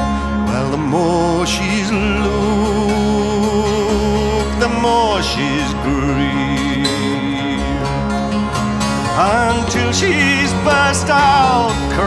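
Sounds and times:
man singing: 0.0 - 8.2, 9.1 - 12.0
folk ballad music: 0.0 - 12.0.

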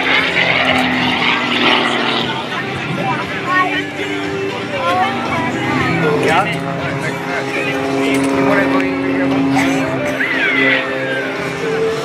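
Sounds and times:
plane engine and propeller droning: 0.0 - 12.0.

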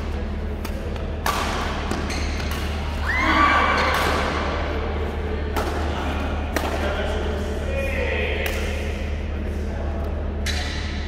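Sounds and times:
steady low hum: 0.0 - 11.0
racket hitting shuttlecock: 0.6 - 3.0.

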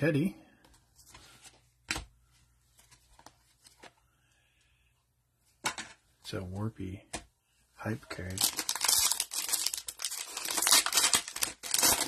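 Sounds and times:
cards rustling: 8.2 - 12.0.

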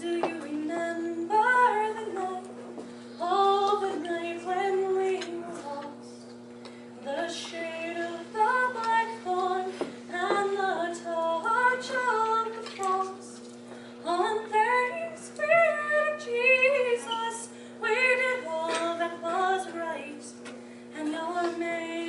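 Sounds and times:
woman singing a cappella: 0.0 - 2.6, 3.2 - 6.2, 7.0 - 22.0.

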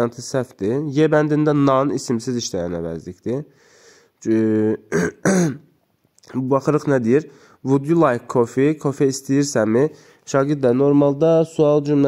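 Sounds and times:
man speaking: 0.0 - 3.6, 4.2 - 5.6, 6.2 - 12.0.

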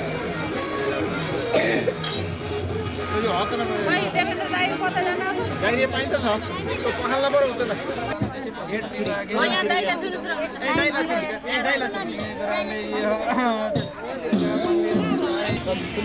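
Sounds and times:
people talking at once: 0.0 - 16.0.

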